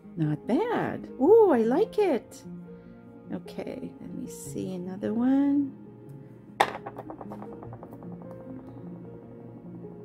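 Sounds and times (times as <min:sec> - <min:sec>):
soft background music: 0:00.0 - 0:10.0
knock on wooden tabletop: 0:06.6 - 0:08.9
object rattling: 0:06.6 - 0:10.0.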